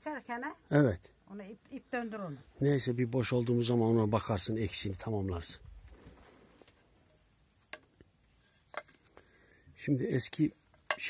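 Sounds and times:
wooden knocks and taps: 7.6s - 7.9s, 10.7s - 11.0s.

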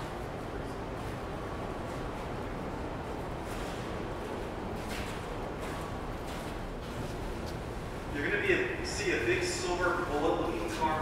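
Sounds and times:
hall room noise: 0.0s - 11.0s.

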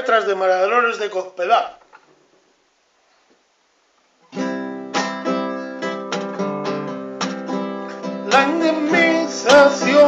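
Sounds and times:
classical guitar playing: 4.2s - 10.0s.

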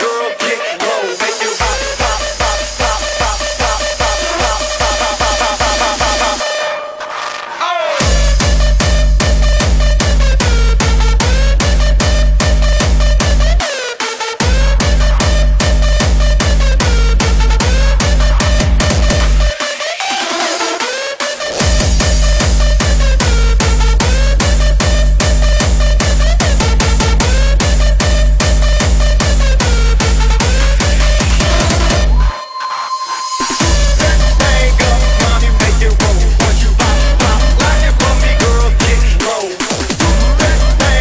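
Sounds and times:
heavy kick drum: 1.6s - 6.4s, 8.0s - 13.6s, 14.4s - 19.6s, 21.6s - 32.3s, 33.6s - 41.0s
held synth line: 30.6s - 39.2s, 40.0s - 41.0s.

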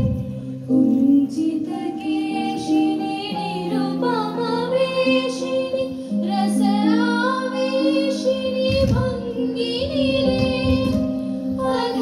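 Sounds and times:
women singing classical song: 0.0s - 12.0s.

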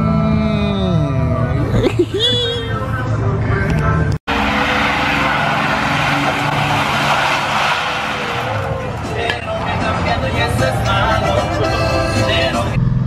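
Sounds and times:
truck engine running hard: 2.8s - 13.0s
tires squealing and spinning: 4.3s - 12.7s.

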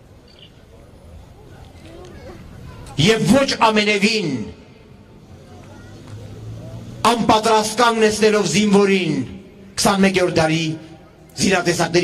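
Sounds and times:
faint distant voices: 0.0s - 3.5s, 4.7s - 7.4s.

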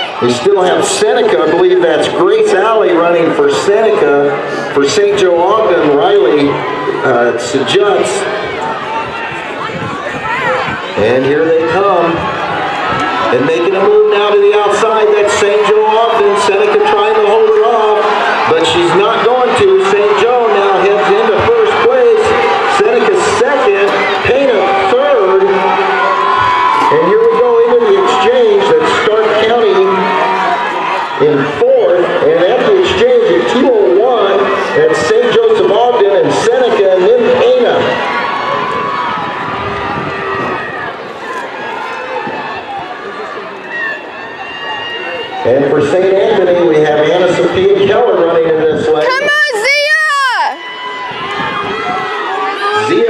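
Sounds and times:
crowd shouting and cheering: 0.0s - 53.0s.

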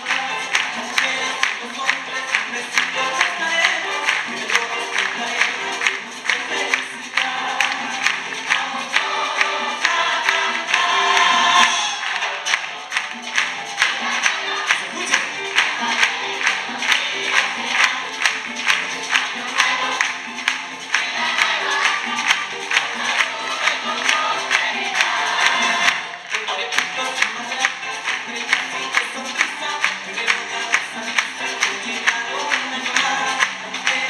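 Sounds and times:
orchestra and choir performing: 0.0s - 34.0s.

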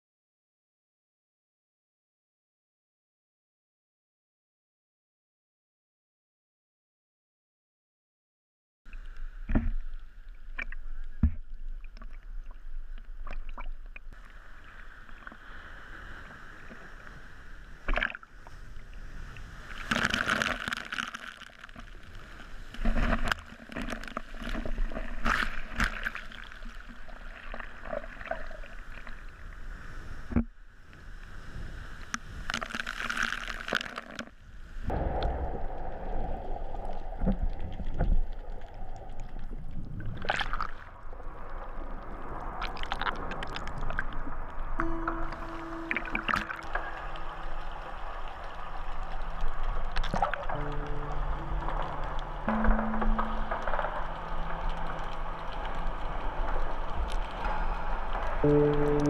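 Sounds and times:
sea water sloshing and splashing: 9.0s - 30.4s, 31.1s - 59.0s.

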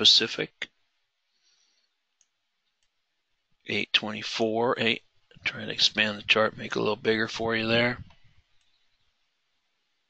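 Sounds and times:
computer mouse clicks: 2.2s - 3.0s, 8.0s - 8.9s.

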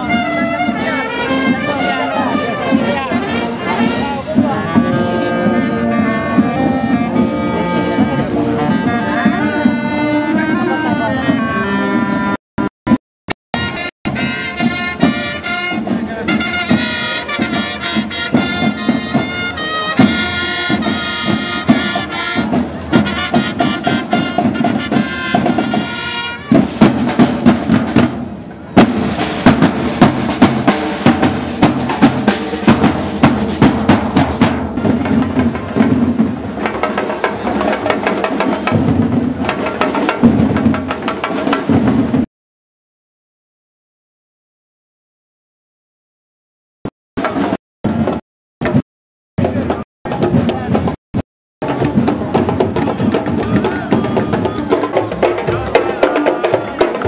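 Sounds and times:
marching drums beat: 0.0s - 10.5s, 13.6s - 42.3s, 47.2s - 48.8s, 49.4s - 51.0s, 51.6s - 57.0s
trumpet fanfare: 0.0s - 12.4s, 13.5s - 28.2s, 28.8s - 35.2s.

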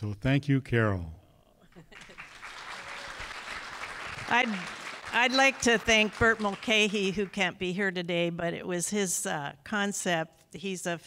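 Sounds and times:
audience applauding: 1.8s - 7.4s.

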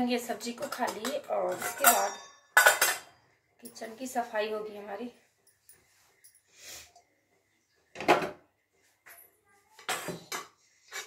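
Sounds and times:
steel pot and utensils clattering: 0.2s - 3.8s.

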